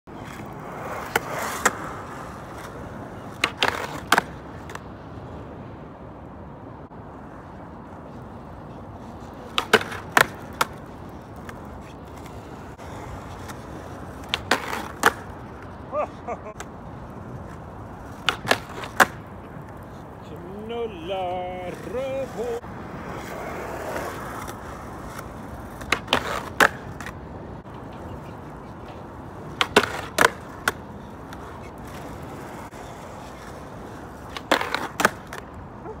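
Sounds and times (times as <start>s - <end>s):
skateboard scrape: 0.1s - 5.5s, 7.0s - 36.0s
skateboard wheels rolling: 0.1s - 36.0s
skateboard landing clack: 3.4s - 4.8s, 9.4s - 10.8s, 14.2s - 15.3s, 18.1s - 19.8s, 25.7s - 27.1s, 29.5s - 32.0s, 34.2s - 35.5s.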